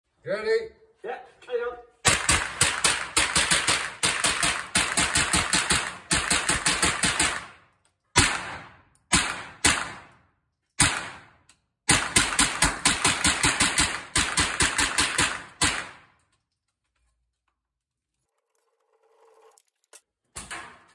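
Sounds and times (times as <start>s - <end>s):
rifle shots echoing indoors: 2.1s - 16.2s.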